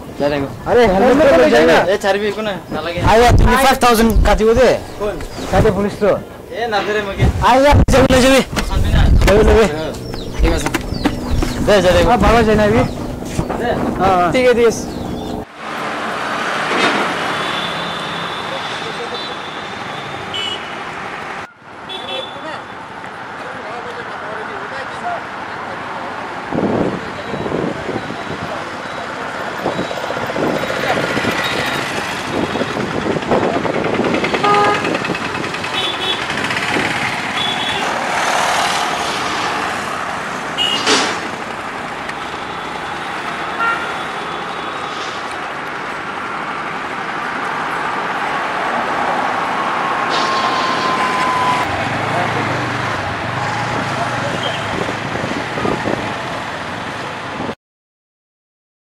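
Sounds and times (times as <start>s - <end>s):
traffic passing: 0.0s - 57.6s
short horn toots: 34.4s - 35.0s.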